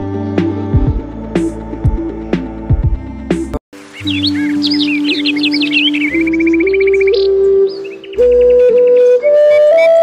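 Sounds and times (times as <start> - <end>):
calm background music: 0.0 - 10.0
bird chirps: 3.9 - 10.0.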